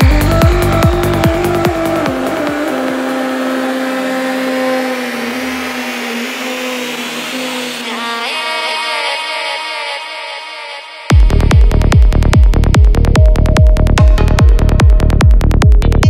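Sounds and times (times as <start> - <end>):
kick drum and bassline: 0.0 - 3.1, 11.1 - 16.0.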